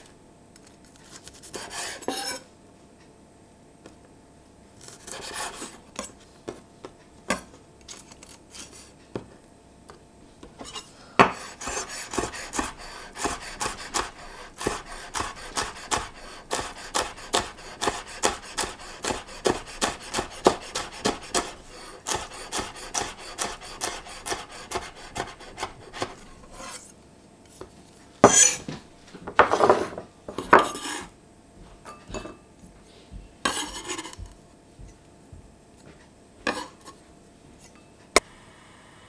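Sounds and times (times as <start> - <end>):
knife scraping across board: 1.0 - 2.5, 4.8 - 5.8, 10.6 - 27.0, 28.2 - 28.7, 29.5 - 31.1, 33.4 - 34.2, 36.5 - 37.0
knife chopping on wooden board: 11.2 - 26.8.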